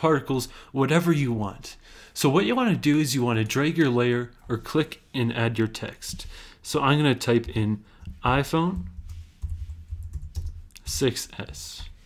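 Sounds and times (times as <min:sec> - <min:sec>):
typing on computer keyboard: 0:08.3 - 0:10.8.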